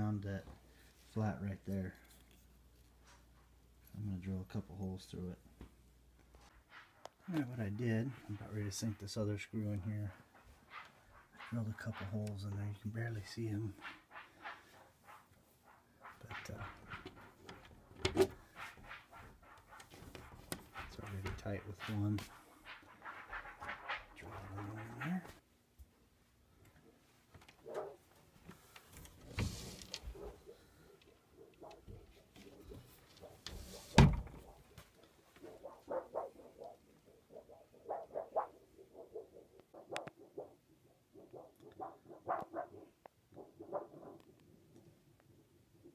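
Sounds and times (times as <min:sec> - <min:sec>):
closet door thumping shut: 0:33.9 - 0:34.4.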